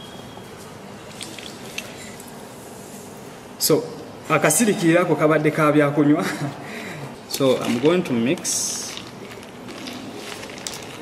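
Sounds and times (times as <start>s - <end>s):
soda pouring into glass of ice: 1.1s - 2.1s, 8.5s - 11.0s.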